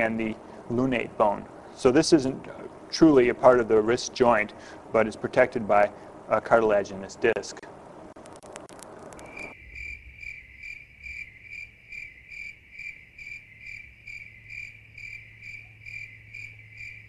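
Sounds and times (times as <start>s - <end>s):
low steady hum: 0.0s - 17.0s
high cricket-like chirp: 9.2s - 17.0s.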